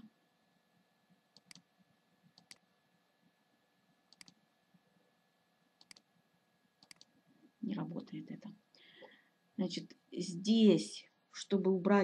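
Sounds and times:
computer mouse double clicks: 4.1s - 4.4s, 6.8s - 7.1s.

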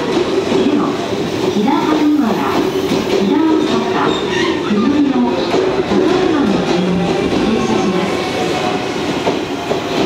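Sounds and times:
sharp clicks from train wheels: 0.0s - 10.0s
train wheels rumbling on rails: 0.0s - 10.0s.

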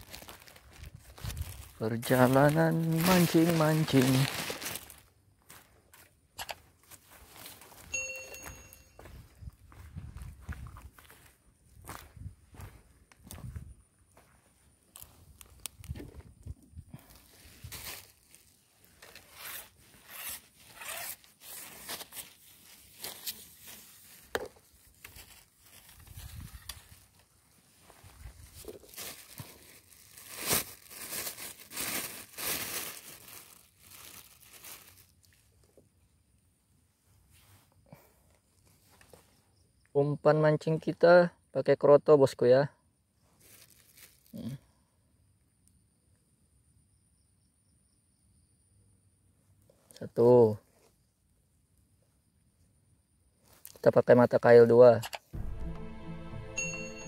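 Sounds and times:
footsteps crunching through dry undergrowth: 0.0s - 16.4s, 17.0s - 20.3s, 21.5s - 35.2s, 43.4s - 44.3s
short electronic chime: 7.9s - 9.0s, 55.4s - 57.0s.

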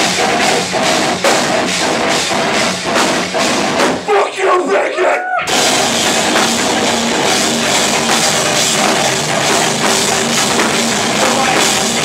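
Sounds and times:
hardcore band playing: 0.0s - 12.0s.

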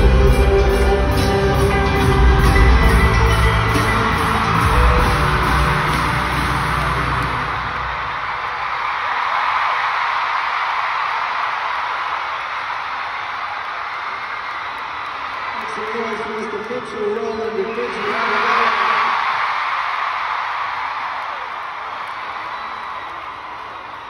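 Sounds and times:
live band with heavy bass: 0.0s - 7.6s
crowd cheering and screaming: 0.0s - 24.0s.

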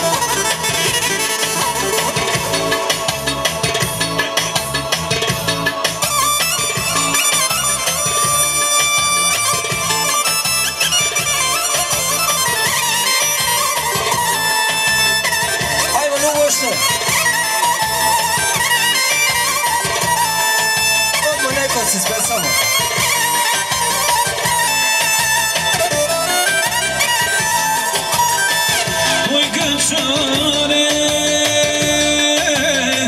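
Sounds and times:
steady drum beat: 0.0s - 33.0s.

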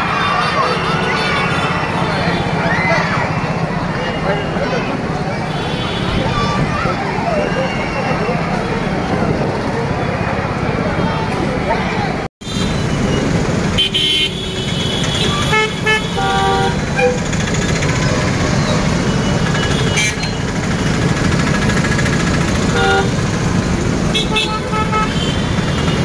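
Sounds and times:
rumble of traffic: 0.0s - 26.0s.

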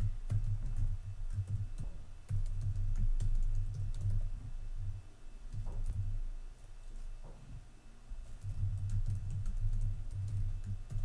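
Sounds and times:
low uneven hum: 0.0s - 11.0s.

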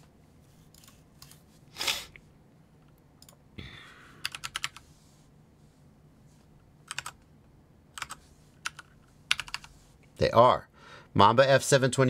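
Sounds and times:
typing on computer keyboard: 4.2s - 4.8s, 6.8s - 7.2s, 8.0s - 9.7s.

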